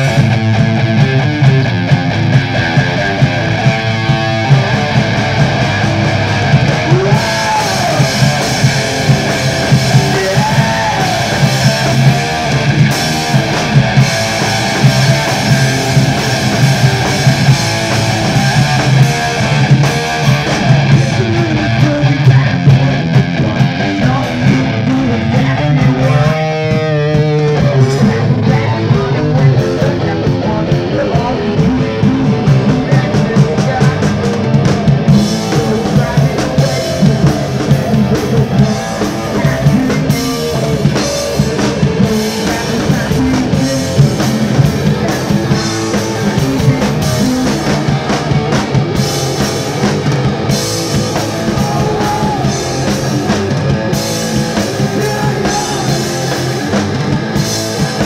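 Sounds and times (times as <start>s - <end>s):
distorted electric guitar: 0.0s - 58.0s
drum kit: 0.0s - 58.0s
electric bass: 0.0s - 58.0s.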